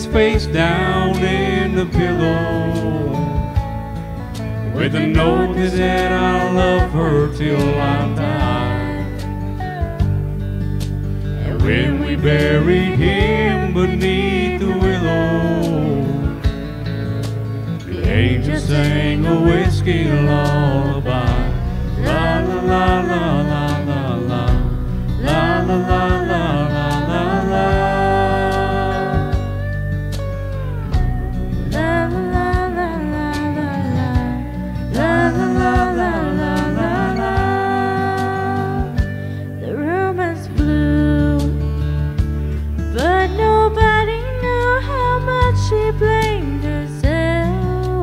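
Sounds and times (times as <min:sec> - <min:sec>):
man and woman singing duet: 0:00.0 - 0:03.7, 0:04.6 - 0:10.1, 0:11.3 - 0:16.6, 0:17.8 - 0:29.8, 0:30.8 - 0:42.0, 0:42.9 - 0:48.0
country guitar and bass: 0:00.0 - 0:48.0
instrumental backing: 0:00.0 - 0:48.0.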